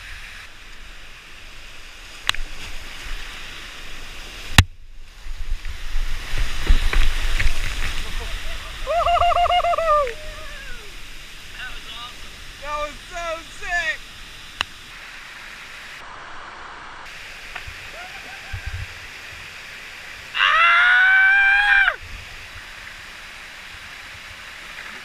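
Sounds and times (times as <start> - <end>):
whitewater rushing: 0.0 - 25.0
person whooping: 8.4 - 11.0, 17.9 - 18.9, 20.4 - 22.0
person yelling: 8.8 - 11.0, 17.9 - 18.7, 20.4 - 22.0.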